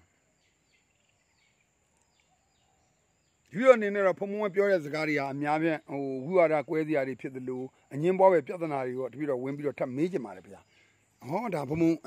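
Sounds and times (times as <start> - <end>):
man speaking: 3.5 - 10.6, 11.2 - 12.0.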